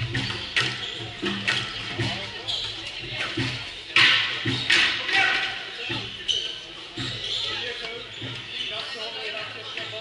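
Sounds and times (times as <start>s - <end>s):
voices in a hall: 0.0s - 10.0s.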